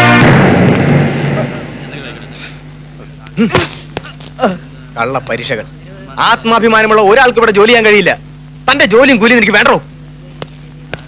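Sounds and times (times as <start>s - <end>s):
loud boom-like hit: 0.0s - 2.3s.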